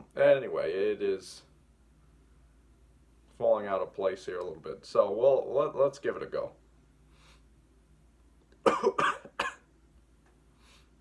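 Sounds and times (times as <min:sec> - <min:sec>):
man coughing: 0:08.6 - 0:09.7.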